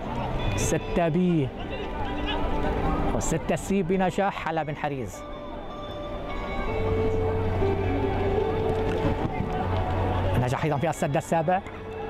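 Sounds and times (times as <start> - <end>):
arena crowd noise: 0.0 - 12.0
music with held notes and bass: 5.2 - 12.0.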